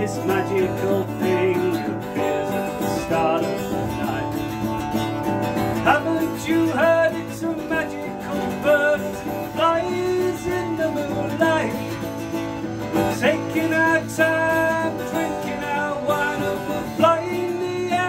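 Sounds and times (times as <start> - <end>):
acoustic guitar strumming: 0.0 - 18.0
man singing folk melody: 0.0 - 18.0.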